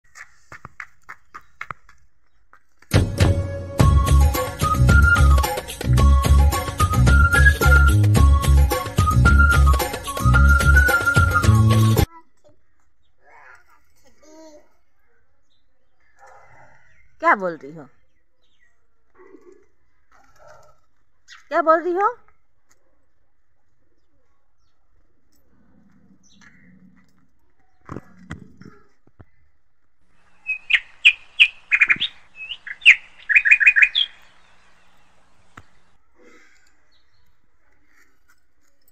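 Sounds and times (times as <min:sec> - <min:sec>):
toddler footsteps on concrete: 0:00.0 - 0:03.0
faint bird chirps: 0:30.3 - 0:38.1.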